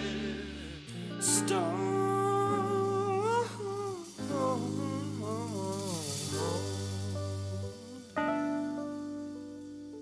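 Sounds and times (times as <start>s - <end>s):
steady low bass note: 0.0s - 1.9s.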